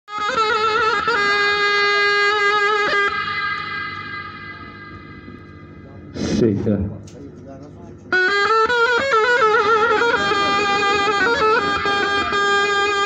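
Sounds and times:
double-reed shawm playing: 0.1 - 6.2, 7.4 - 13.0.

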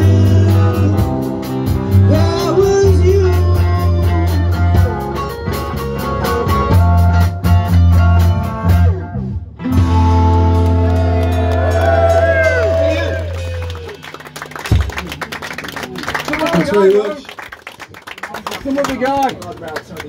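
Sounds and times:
person singing: 0.0 - 4.8
steady bass line: 0.0 - 15.5
guitar: 0.0 - 16.7.

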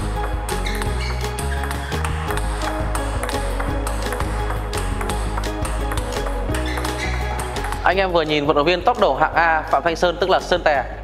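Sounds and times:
background music with bass line: 0.0 - 11.0
table tennis ball clicks: 0.6 - 8.0.

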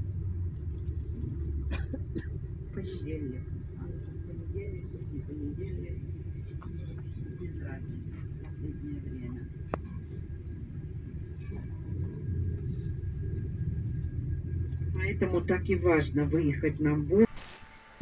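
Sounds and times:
bus engine and road rumble: 0.0 - 17.3.

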